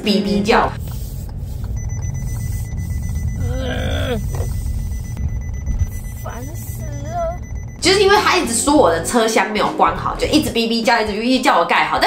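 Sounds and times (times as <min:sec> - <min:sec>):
woman's voice: 0:00.0 - 0:00.8, 0:06.3 - 0:12.0
road rumble inside car: 0:00.5 - 0:08.6
car warning beeping: 0:00.8 - 0:08.5.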